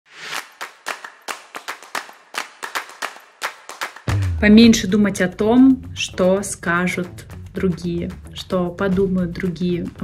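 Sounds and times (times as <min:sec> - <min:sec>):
sharp claps: 0:00.3 - 0:04.7.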